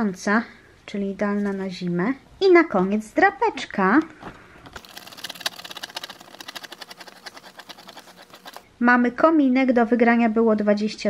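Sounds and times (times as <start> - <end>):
fingernail scratching scratch card: 4.8 - 8.7.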